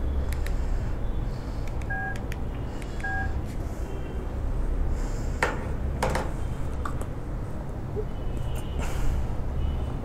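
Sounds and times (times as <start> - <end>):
short electronic beeps: 1.9 - 2.2, 3.0 - 3.4.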